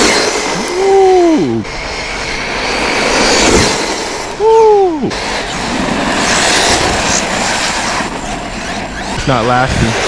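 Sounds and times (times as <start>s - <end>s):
rc trucks motor and tires rushing: 0.0s - 10.0s.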